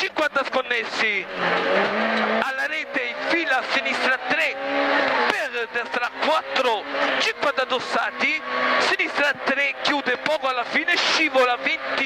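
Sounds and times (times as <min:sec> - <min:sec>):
rally car engine at high revs: 0:00.4 - 0:12.0.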